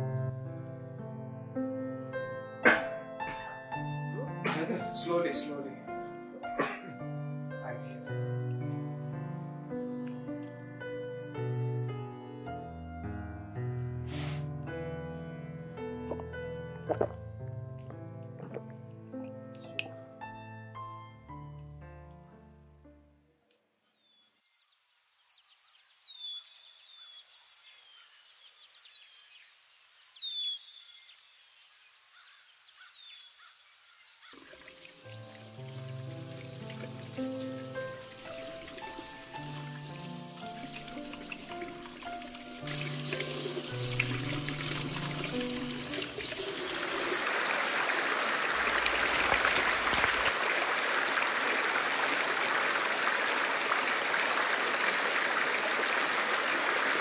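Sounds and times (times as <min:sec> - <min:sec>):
music with slow held notes: 0:00.0 - 0:23.3, 0:35.0 - 0:46.2
birds chirping and trilling: 0:23.8 - 0:34.7
fast stream rushing: 0:43.0 - 0:57.0.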